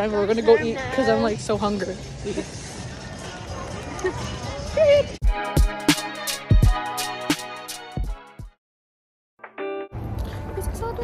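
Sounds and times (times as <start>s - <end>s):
outdoor crowd noise: 0.0s - 7.6s, 9.9s - 11.0s.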